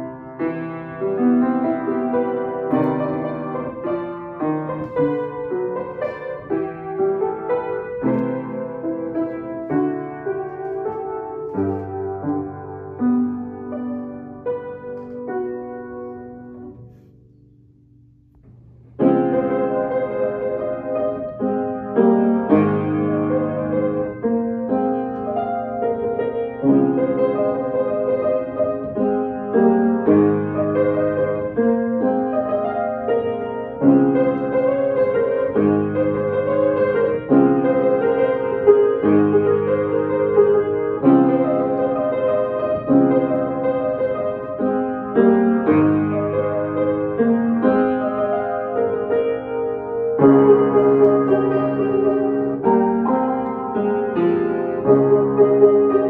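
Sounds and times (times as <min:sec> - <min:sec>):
slow piano piece: 0:00.0 - 0:56.0.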